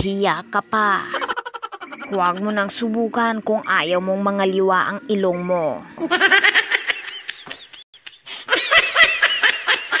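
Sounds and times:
person snickering: 1.1s - 2.1s.

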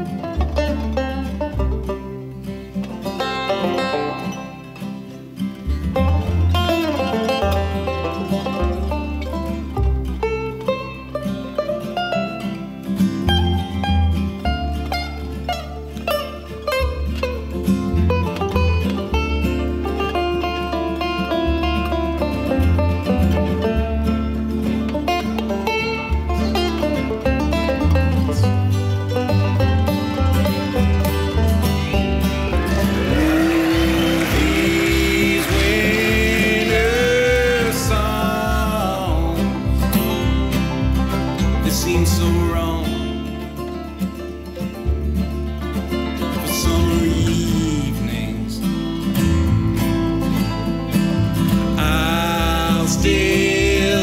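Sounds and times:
acoustic guitar picking: 0.0s - 54.0s
banjo picking: 0.0s - 54.0s
upright bass walking line: 0.0s - 54.0s
sliding lead line: 19.6s - 44.4s.

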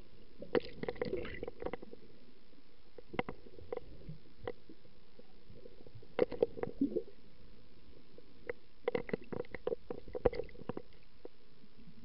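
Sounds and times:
underwater rumble of moving water: 0.0s - 12.0s.

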